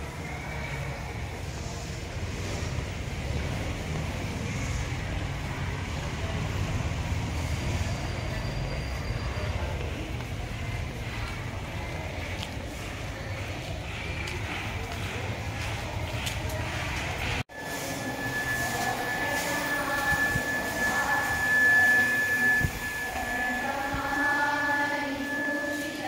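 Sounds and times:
low rumbling outdoor noise: 0:00.0 - 0:26.0.

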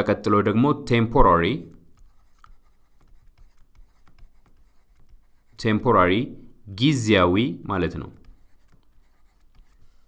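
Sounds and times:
stylus scratching on tablet: 0:01.2 - 0:06.2, 0:07.7 - 0:10.0.

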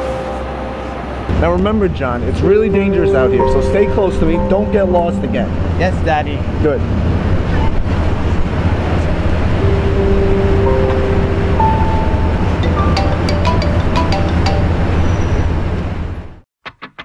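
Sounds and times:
city traffic engine rumble: 0:00.0 - 0:16.4
held tones: 0:09.6 - 0:15.3.

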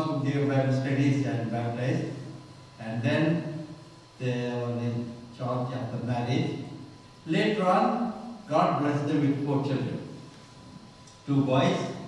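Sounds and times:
man speaking at a microphone: 0:00.0 - 0:10.2, 0:11.2 - 0:12.0.

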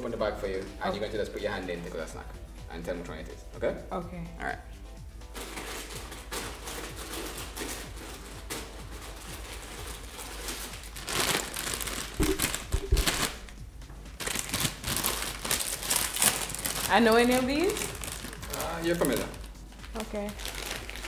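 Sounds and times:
snack bag crinkling: 0:09.6 - 0:13.5, 0:14.2 - 0:19.5, 0:20.3 - 0:21.0.

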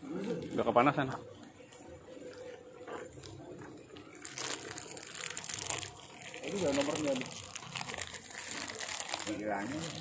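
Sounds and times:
plastic bag crinkling: 0:02.2 - 0:10.0.

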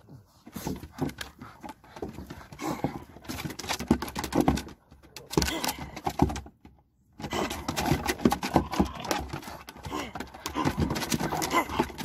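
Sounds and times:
dog claws tapping wooden deck: 0:00.6 - 0:12.0.

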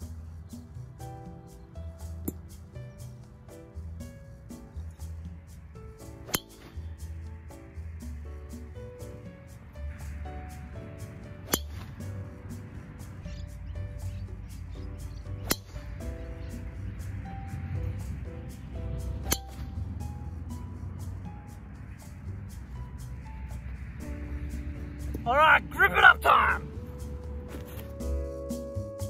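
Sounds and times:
background music: 0:00.0 - 0:29.0
golf club striking ball: 0:02.1 - 0:02.7, 0:06.1 - 0:07.0, 0:11.0 - 0:13.5, 0:15.4 - 0:16.6, 0:19.1 - 0:19.8.

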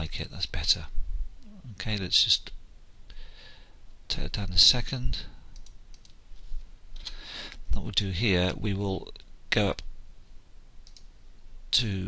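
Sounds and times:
soft computer mouse clicks: 0:05.6 - 0:06.2, 0:10.8 - 0:11.1.

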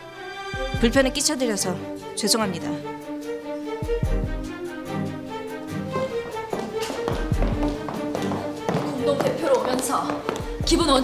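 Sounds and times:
background music: 0:00.0 - 0:11.0
heeled footsteps on hard floor: 0:05.7 - 0:11.0.

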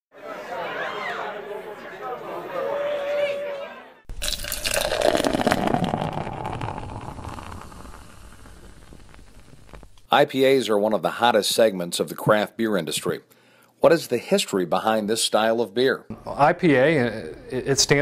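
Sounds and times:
beer pouring into glass: 0:04.1 - 0:09.8
crackling fizz: 0:04.1 - 0:10.1.

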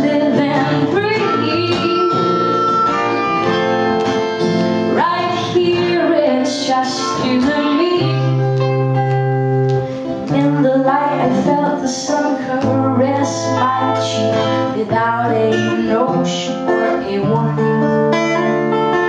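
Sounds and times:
woman singing: 0:00.0 - 0:03.6, 0:04.8 - 0:09.0, 0:10.0 - 0:18.7
strummed acoustic guitar: 0:00.0 - 0:19.0
melodica melody: 0:01.0 - 0:04.8.

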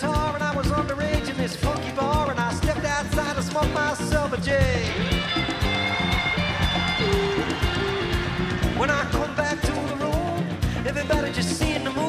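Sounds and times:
bass: 0:00.0 - 0:12.0
drums: 0:00.0 - 0:12.0
percussion: 0:00.0 - 0:12.0.

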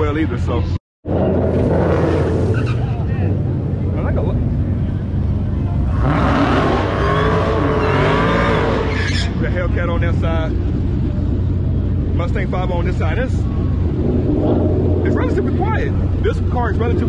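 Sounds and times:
car engine revving: 0:01.1 - 0:17.0.

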